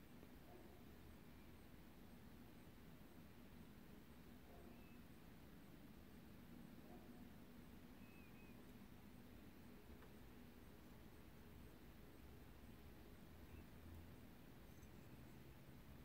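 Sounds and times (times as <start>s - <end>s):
steady low hum: 0.0s - 16.0s
faint high chirps: 4.4s - 5.8s, 6.8s - 9.0s, 12.7s - 16.0s.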